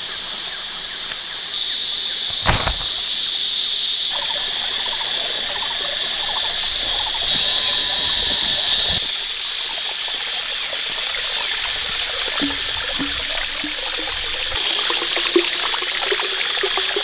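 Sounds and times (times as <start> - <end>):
high-pitched insect chorus: 0.0 - 17.0
pulsing frog-like calls: 4.1 - 13.3.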